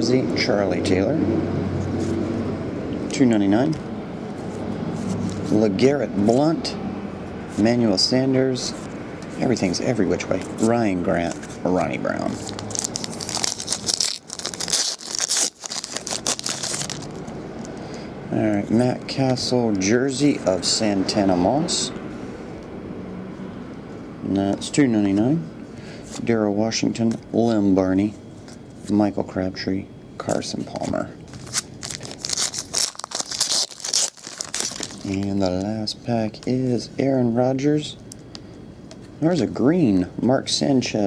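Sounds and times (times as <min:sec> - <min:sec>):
foil wrapper tearing and crinkling: 0:12.1 - 0:17.2, 0:31.3 - 0:35.4.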